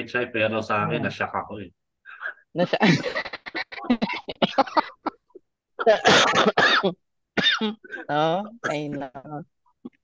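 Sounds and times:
person coughing: 0:05.8 - 0:09.0.

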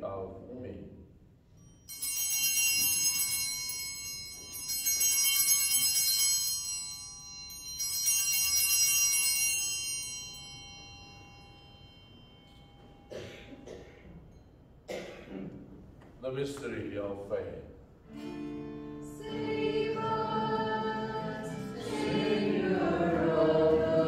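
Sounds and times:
bright bells ringing: 0:01.5 - 0:13.7.

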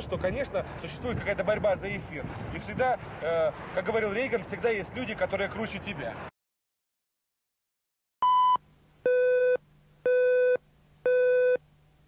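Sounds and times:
electronic beep tones: 0:08.2 - 0:11.6.

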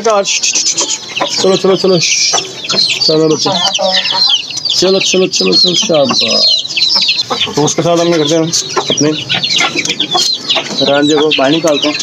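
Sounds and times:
chickens clucking: 0:00.0 - 0:12.0
chicks peeping: 0:00.0 - 0:12.0.

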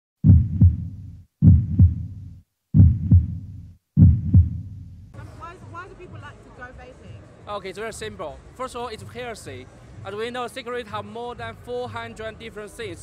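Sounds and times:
deep double thumps: 0:00.2 - 0:05.1.

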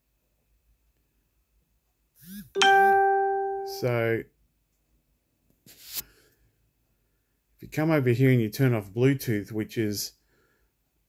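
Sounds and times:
bell-like notification ding: 0:02.6 - 0:03.9.

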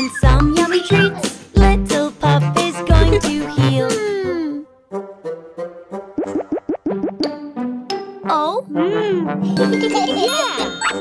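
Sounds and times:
cartoon song music: 0:00.0 - 0:11.0.

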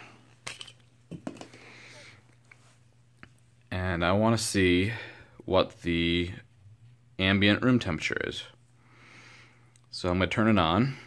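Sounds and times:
faint knocks and handling noise: 0:00.2 - 0:03.6.

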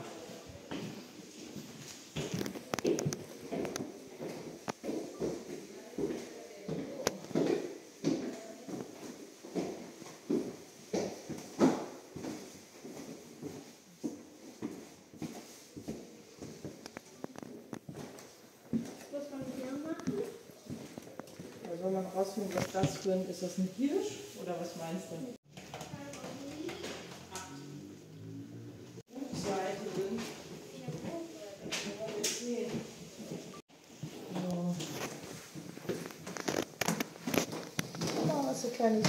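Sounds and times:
footsteps on wooden floorboards: 0:00.2 - 0:23.3, 0:29.0 - 0:39.0
people talking: 0:19.2 - 0:20.4, 0:21.6 - 0:27.9, 0:29.1 - 0:33.5, 0:38.2 - 0:39.0.

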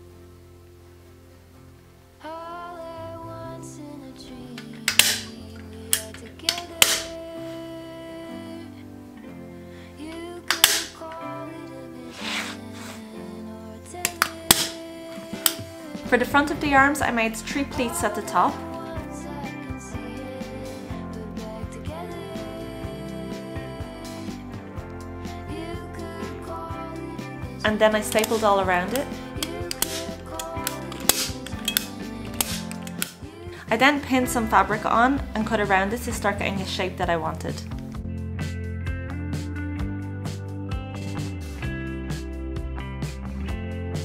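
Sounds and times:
background music: 0:00.0 - 0:44.0
staple gun firing staples: 0:04.9 - 0:05.3, 0:10.5 - 0:10.9
staple gun snapping: 0:04.9 - 0:05.3, 0:06.0 - 0:07.1, 0:10.5 - 0:11.0, 0:14.1 - 0:14.8, 0:29.4 - 0:33.2.

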